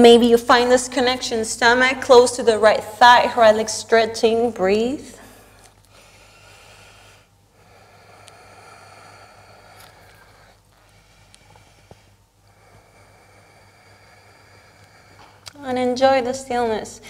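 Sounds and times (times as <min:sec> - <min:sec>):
woman breathing slowly: 0:05.0 - 0:15.6.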